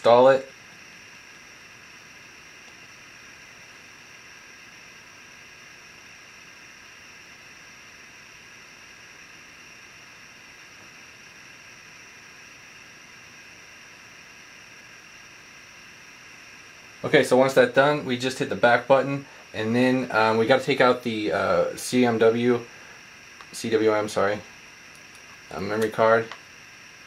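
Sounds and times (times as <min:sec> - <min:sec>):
faint steady hiss: 0:00.0 - 0:27.0.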